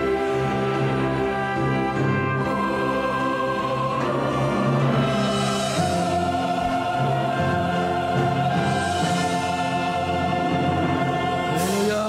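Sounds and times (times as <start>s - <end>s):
choir with orchestra holding chord: 0.0s - 12.0s.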